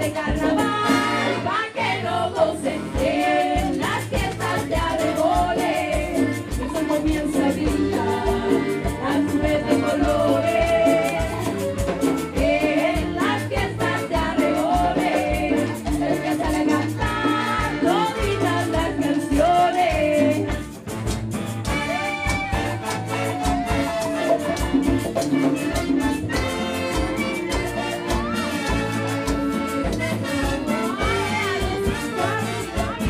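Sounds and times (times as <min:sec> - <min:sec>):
accordion: 0:00.0 - 0:33.0
congas: 0:00.0 - 0:33.0
live cumbia band playing: 0:00.0 - 0:33.0
clarinet: 0:00.3 - 0:18.9, 0:19.9 - 0:33.0.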